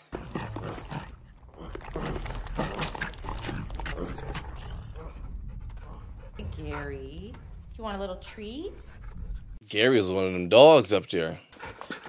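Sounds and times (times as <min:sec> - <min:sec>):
steady low hum: 0:03.1 - 0:09.6.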